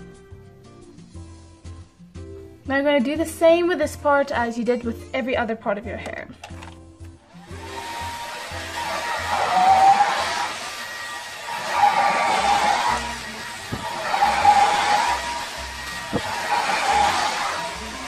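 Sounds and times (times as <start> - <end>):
hair dryer blowing: 7.2 - 18.0.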